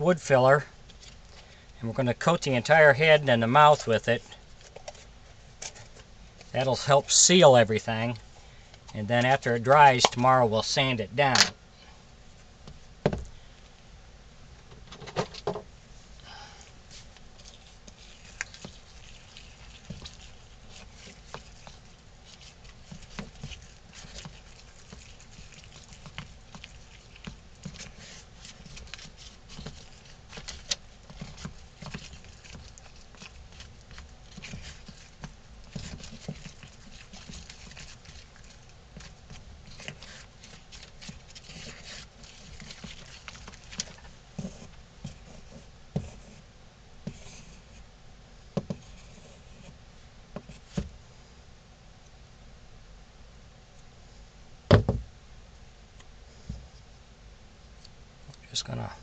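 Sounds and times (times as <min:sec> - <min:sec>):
tool scraping in plastic tub: 0:19.5 - 0:46.4.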